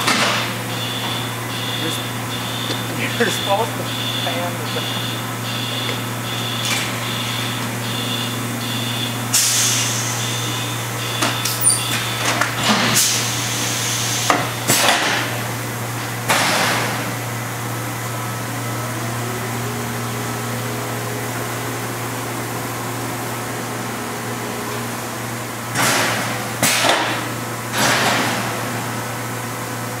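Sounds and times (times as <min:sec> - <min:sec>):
machine hum: 0:00.0 - 0:30.0.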